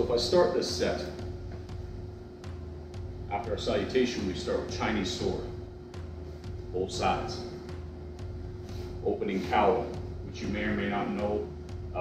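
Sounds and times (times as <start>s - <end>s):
low bass line: 0.0s - 12.0s.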